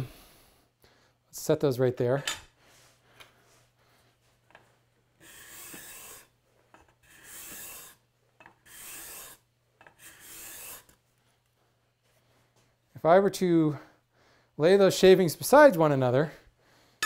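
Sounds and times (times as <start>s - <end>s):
card scraper scraping wood: 5.2s - 8.0s, 8.6s - 11.0s.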